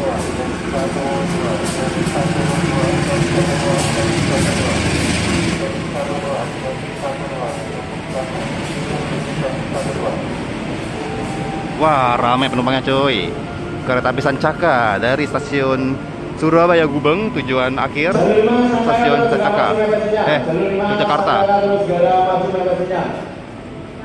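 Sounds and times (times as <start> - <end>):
faint voices: 0.0 - 21.8
train engine and wheel noise: 0.0 - 24.0.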